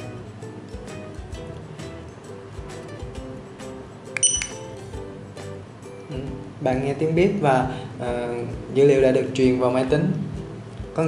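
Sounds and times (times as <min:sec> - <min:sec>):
background music: 0:00.0 - 0:11.0
barcode scanner beep: 0:04.2 - 0:04.6.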